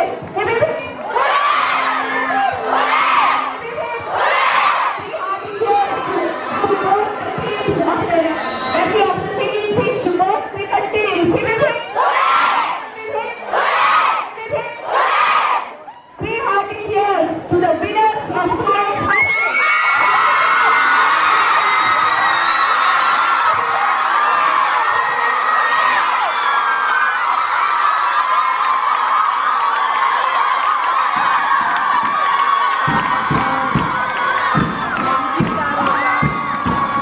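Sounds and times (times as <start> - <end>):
girls cheering and shouting: 0.1 - 17.2, 18.6 - 37.0
people clapping: 19.4 - 37.0.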